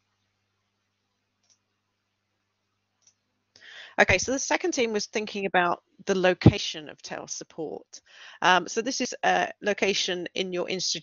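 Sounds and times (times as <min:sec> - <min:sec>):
faint low electrical hum: 0:00.0 - 0:11.0
faint clicks: 0:01.4 - 0:01.7, 0:03.0 - 0:03.7
breath in: 0:03.6 - 0:04.0, 0:08.0 - 0:08.4.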